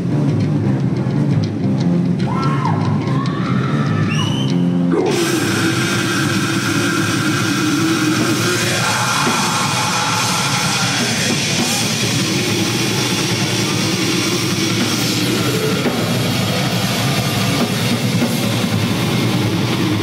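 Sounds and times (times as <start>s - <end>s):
distorted guitar: 0.0s - 20.0s
drums: 0.0s - 20.0s.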